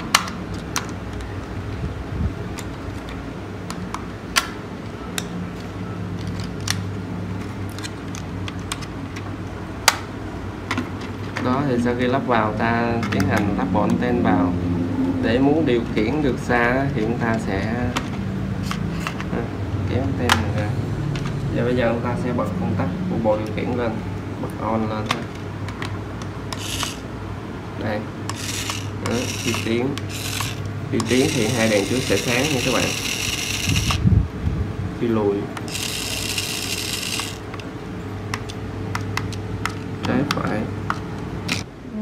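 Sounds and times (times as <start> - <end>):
toy car motor whirring: 26.5 - 27.1, 28.3 - 34.1, 35.7 - 37.5.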